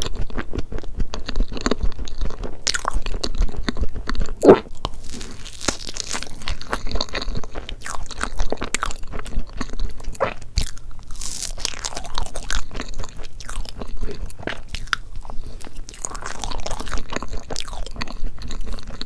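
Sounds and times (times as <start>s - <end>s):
chewing and biting cake: 0.0s - 19.0s.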